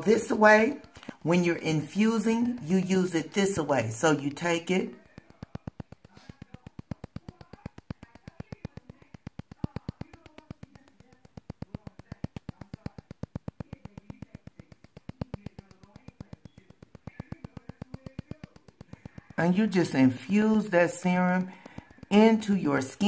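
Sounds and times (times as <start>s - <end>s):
skin scrubber rapid clicking: 0.0s - 23.0s.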